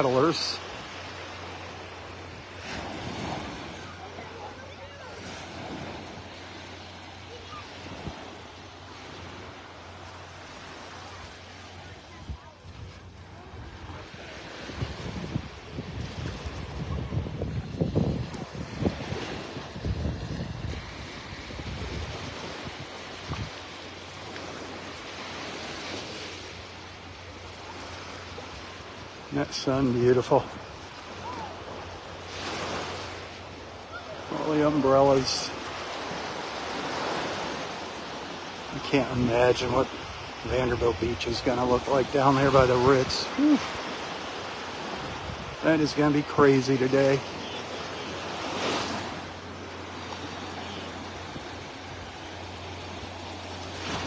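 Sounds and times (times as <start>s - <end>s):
small waves lapping on shore: 0.0s - 54.0s
wind buffeting microphone: 12.1s - 23.6s.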